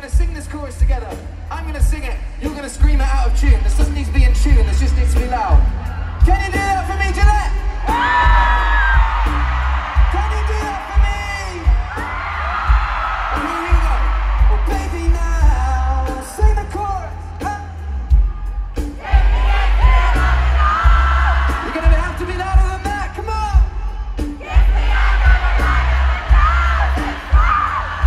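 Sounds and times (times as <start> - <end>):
loud live music with bass beat: 0.0 - 28.0
stadium crowd cheering and screaming: 3.0 - 28.0.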